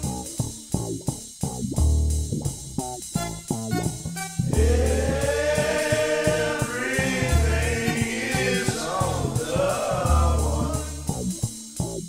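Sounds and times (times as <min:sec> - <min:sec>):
deep bass line: 0:00.0 - 0:12.0
drum beat: 0:03.2 - 0:11.5
sung vocals: 0:04.5 - 0:11.2.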